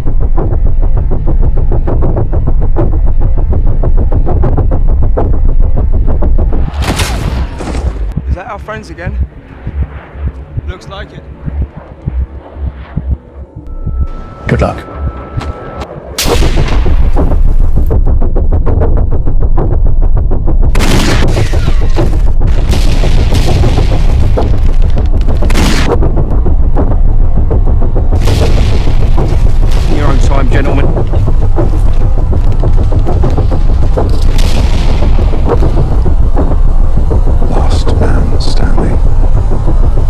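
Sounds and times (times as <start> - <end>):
deep continuous rumble: 0.0 - 40.0
explosions: 6.6 - 8.2, 16.2 - 18.0, 20.7 - 26.1, 28.2 - 36.8.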